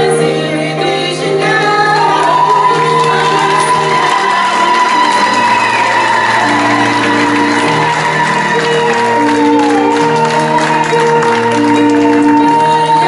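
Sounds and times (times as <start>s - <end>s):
sustained keyboard chords: 0.0s - 13.0s.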